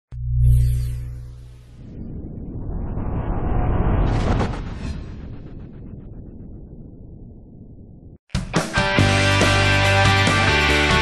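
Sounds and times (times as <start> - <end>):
deep noisy rumble whoosh: 1.2 - 8.2.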